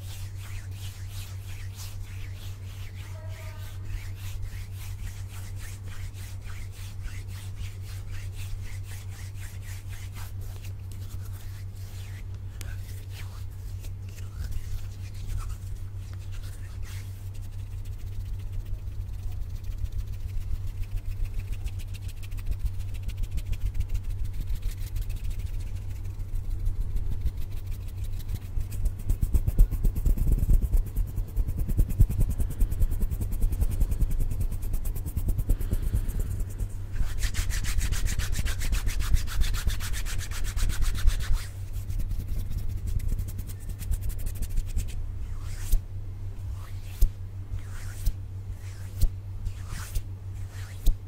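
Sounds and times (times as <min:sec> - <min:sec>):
hands rubbing against microphone: 0:00.0 - 0:45.8, 0:46.4 - 0:51.0.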